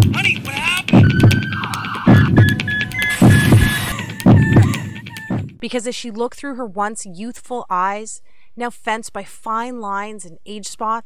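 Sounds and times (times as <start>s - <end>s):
fast high-pitched beeping: 0.0s - 5.5s
low heartbeat-like double thumps: 0.0s - 5.6s.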